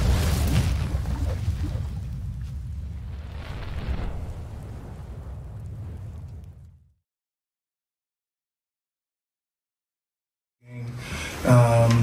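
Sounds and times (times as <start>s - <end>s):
deep rumbling explosion boom: 0.0s - 7.0s.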